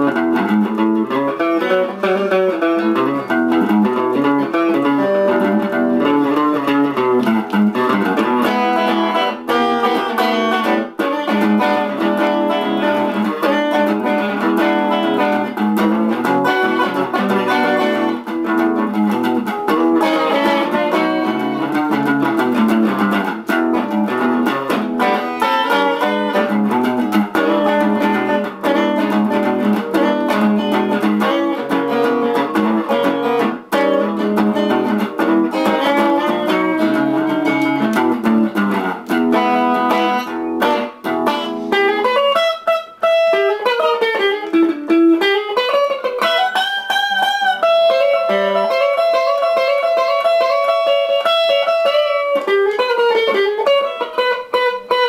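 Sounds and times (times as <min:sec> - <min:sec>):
fingerstyle electric guitar boogie-woogie: 0:00.0 - 0:55.0.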